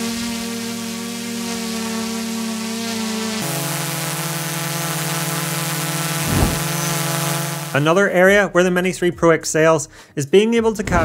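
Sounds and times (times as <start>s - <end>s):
second drone hum: 0.0s - 7.9s
drone propeller hum: 0.0s - 8.0s
short whoosh: 6.2s - 6.9s.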